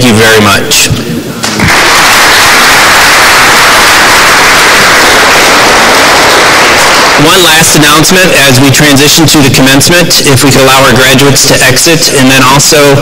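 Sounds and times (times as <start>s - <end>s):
audience applauding: 1.4s - 7.5s.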